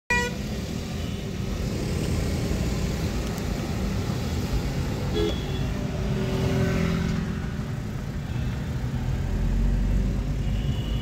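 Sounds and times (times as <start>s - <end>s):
vehicle horn toot: 5.2s - 5.7s, 10.4s - 11.0s.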